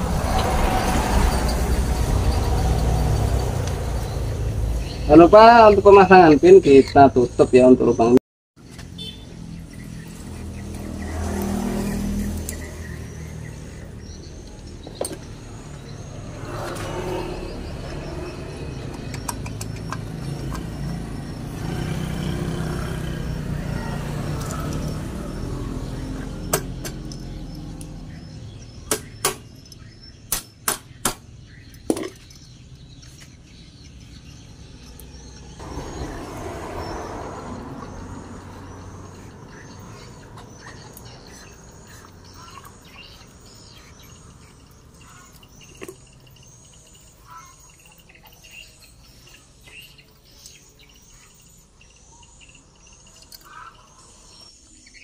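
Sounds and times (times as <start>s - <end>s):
low rumble of traffic: 0.0s - 55.0s
metal engine parts clicking: 18.7s - 20.9s, 28.9s - 33.1s, 52.3s - 53.8s.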